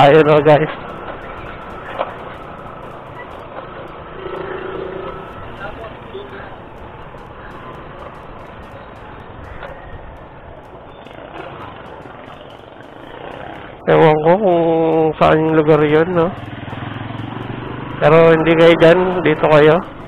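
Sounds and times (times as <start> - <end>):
motorcycle engine running: 0.0 - 20.0
wind and road noise: 0.0 - 20.0.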